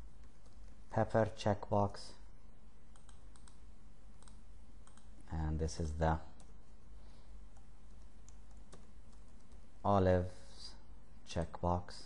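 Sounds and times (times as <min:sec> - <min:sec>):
low background hiss: 0:00.0 - 0:12.0.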